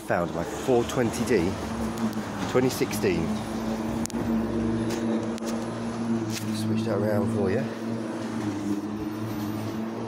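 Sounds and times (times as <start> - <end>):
low machine hum: 0.4 - 10.0.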